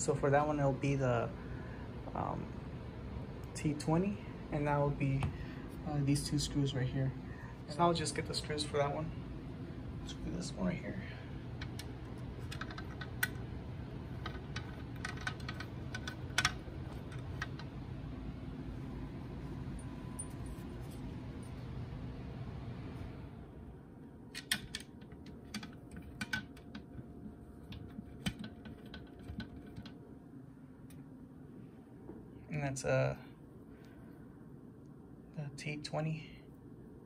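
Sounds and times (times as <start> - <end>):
low hum: 0.0 - 37.0
small metal parts clicking: 11.6 - 13.4, 14.2 - 17.6.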